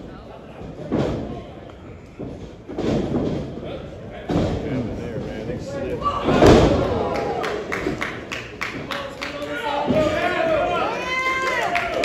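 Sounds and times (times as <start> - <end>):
crowd voices: 0.0 - 12.0.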